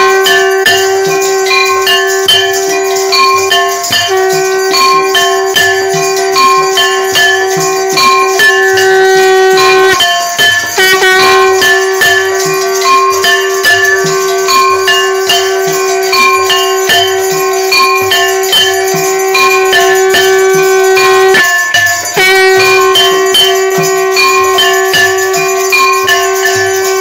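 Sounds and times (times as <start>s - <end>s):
bells and jingling percussion: 0.0s - 27.0s
long held note: 4.0s - 10.0s, 10.8s - 21.5s, 22.2s - 27.0s.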